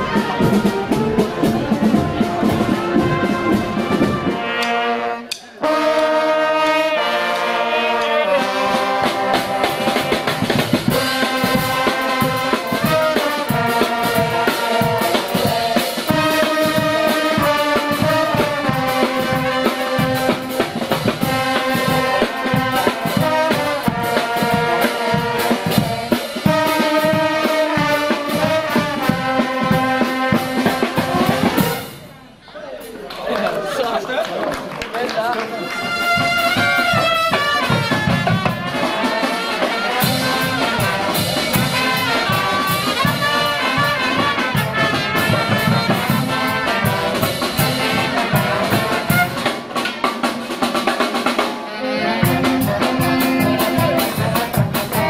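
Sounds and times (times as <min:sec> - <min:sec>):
marching drums: 0:00.0 - 0:32.2, 0:35.5 - 0:51.6, 0:52.2 - 0:55.0
brass band playing: 0:00.0 - 0:32.9, 0:35.4 - 0:55.0.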